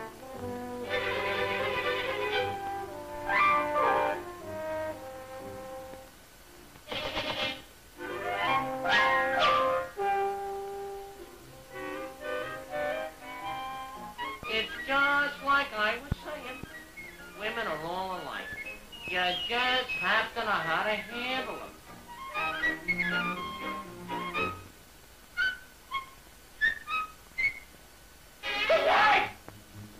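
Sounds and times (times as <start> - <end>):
brass-led orchestral cartoon music: 0.0 - 6.6, 8.0 - 15.4, 21.6 - 24.7, 28.4 - 28.9.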